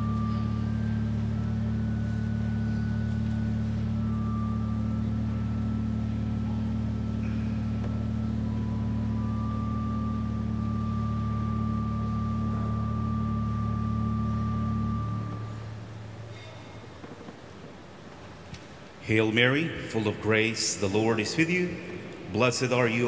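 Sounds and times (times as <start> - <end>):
church organ chord: 0.0 - 23.0.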